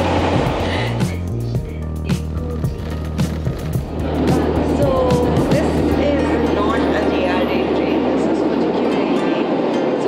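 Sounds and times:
train running rumble: 0.0s - 10.0s.

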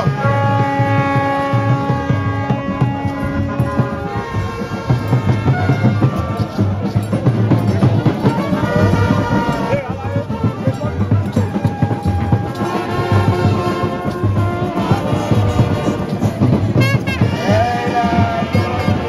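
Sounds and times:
brass band playing: 0.0s - 19.0s
crowd voices: 0.0s - 19.0s
pounding drum beat: 0.0s - 19.0s.

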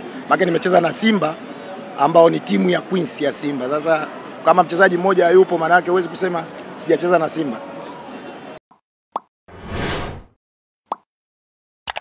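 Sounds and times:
whoosh: 9.5s - 10.3s.

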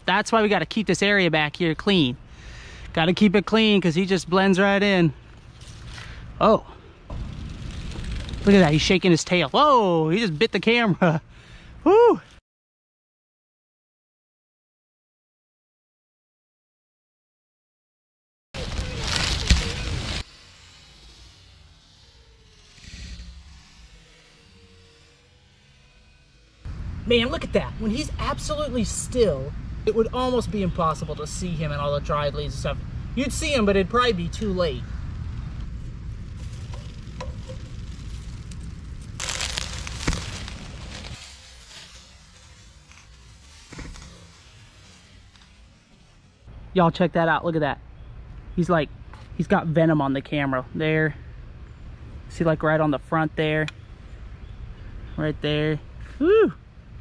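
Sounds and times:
dry leaves rustling: 7.1s - 10.8s, 18.6s - 26.4s, 35.3s - 46.5s
low handling rumble: 26.7s - 46.9s.

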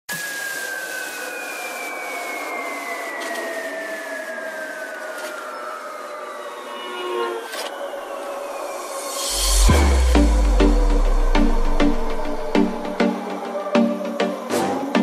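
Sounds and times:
gliding synth tones: 0.4s - 15.0s.

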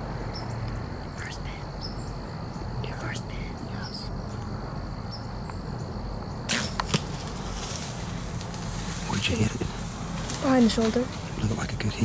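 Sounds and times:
arrow striking crack: 6.5s - 7.8s.

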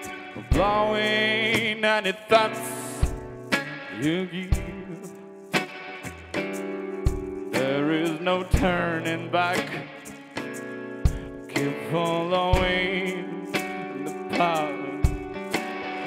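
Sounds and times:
strummed acoustic guitar: 0.0s - 16.0s
man singing: 0.4s - 3.2s, 3.8s - 5.2s, 7.5s - 10.2s, 11.5s - 15.4s.

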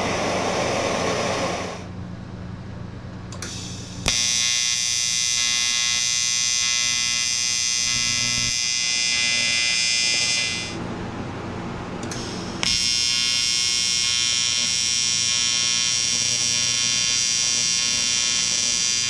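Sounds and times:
welding arc buzzing: 3.4s - 10.8s, 12.0s - 19.0s.

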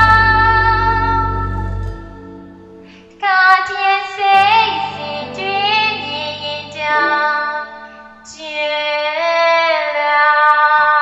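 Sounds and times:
person singing long held note: 0.0s - 2.1s, 3.2s - 9.8s
soft backing music: 0.0s - 11.0s.

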